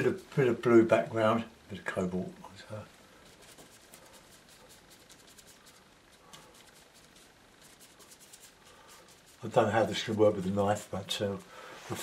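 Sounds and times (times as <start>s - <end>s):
paintbrush scrubbing on board: 3.2s - 12.0s.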